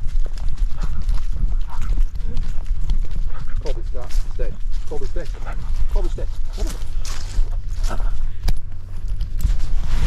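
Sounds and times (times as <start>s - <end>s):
steps through dry leaves: 0.0s - 10.0s.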